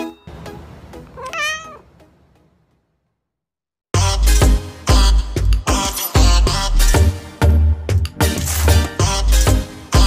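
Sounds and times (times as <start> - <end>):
soft music: 0.0 - 2.7
cat meowing: 1.1 - 1.9.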